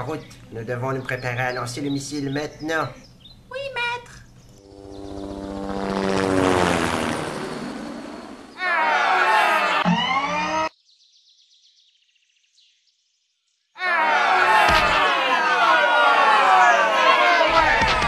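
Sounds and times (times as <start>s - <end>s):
aircraft engine drone flying past: 4.4s - 10.7s.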